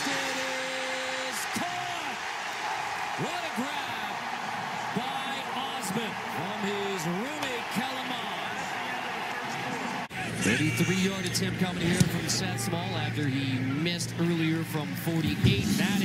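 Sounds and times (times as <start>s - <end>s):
people yelling: 0.0s - 11.1s
stadium crowd cheering: 0.0s - 16.0s.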